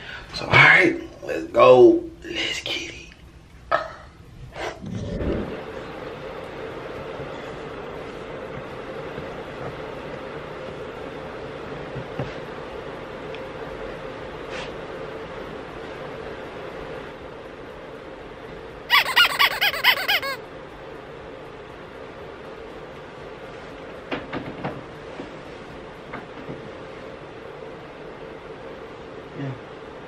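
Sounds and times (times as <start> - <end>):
high squeaky pulses: 18.9 - 20.4.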